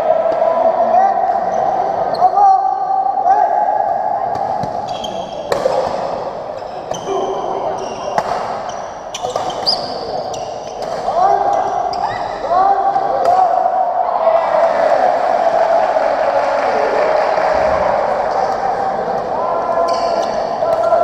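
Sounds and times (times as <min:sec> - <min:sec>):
spectators chatting: 0:00.0 - 0:21.0
shoes squeaking on court floor: 0:04.8 - 0:05.5, 0:06.6 - 0:12.4, 0:19.8 - 0:20.5
rackets striking shuttlecock: 0:08.1 - 0:10.2.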